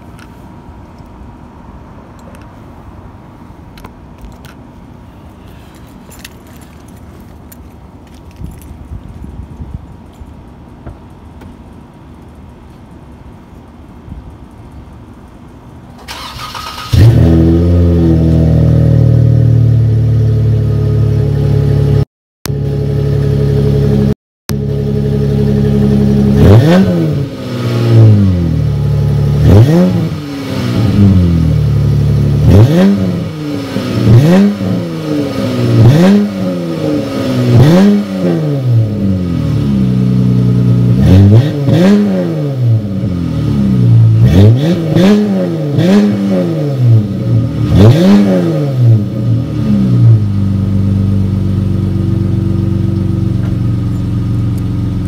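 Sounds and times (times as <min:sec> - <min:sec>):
car engine cranking: 0:14.8 - 0:18.5
car engine revving: 0:16.1 - 0:55.0
car engine idling: 0:50.2 - 0:55.0.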